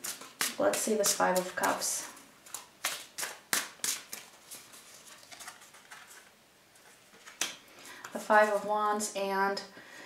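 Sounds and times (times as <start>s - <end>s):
soft card clicks and rustling: 0.0s - 8.7s
cards snapping: 2.4s - 6.2s.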